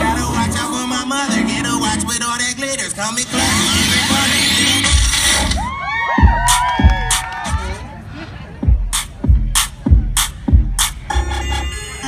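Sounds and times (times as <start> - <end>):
hip-hop dance music over speakers: 0.0 - 12.0.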